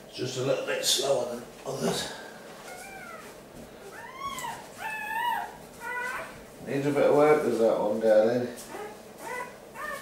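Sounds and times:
newborn puppies crying: 0:02.6 - 0:06.5, 0:08.6 - 0:10.0.

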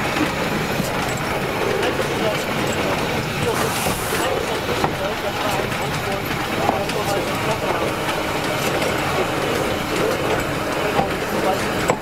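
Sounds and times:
railway wagon wheels rumbling: 0:00.0 - 0:12.0.

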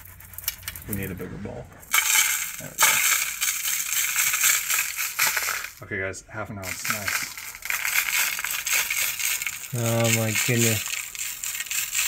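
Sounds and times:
metal flakes pattering into a bowl: 0:00.0 - 0:01.2, 0:01.8 - 0:05.8, 0:06.6 - 0:12.0.

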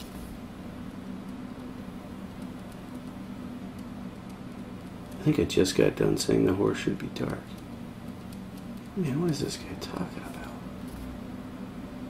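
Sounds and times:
low electrical hum: 0:00.0 - 0:12.0.

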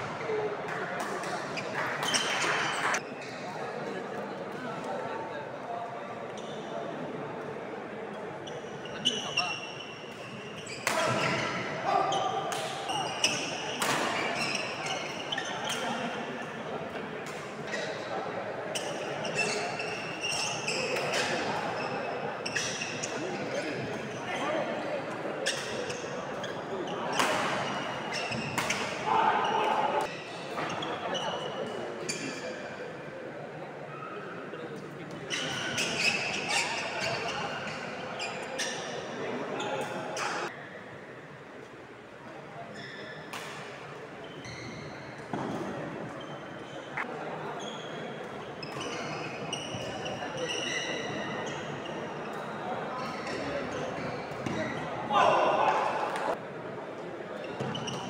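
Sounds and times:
shoes squeaking on wooden court: 0:01.2 - 0:03.5, 0:08.4 - 0:16.2, 0:18.7 - 0:24.4, 0:25.4 - 0:32.5, 0:35.2 - 0:40.5, 0:42.7 - 0:55.0, 0:57.4 - 0:58.0.

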